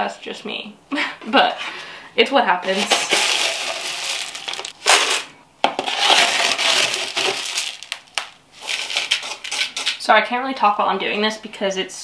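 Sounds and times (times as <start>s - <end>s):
mineral grains poured rattling: 2.7s - 5.2s, 6.0s - 9.4s.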